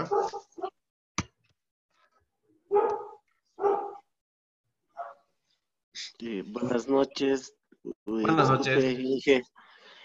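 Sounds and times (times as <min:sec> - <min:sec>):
dog barking: 0:00.0 - 0:00.8, 0:02.7 - 0:04.1, 0:04.9 - 0:05.3.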